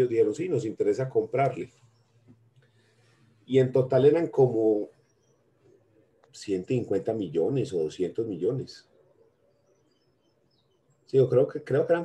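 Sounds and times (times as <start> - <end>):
faint high chirps: 0.0 - 12.0.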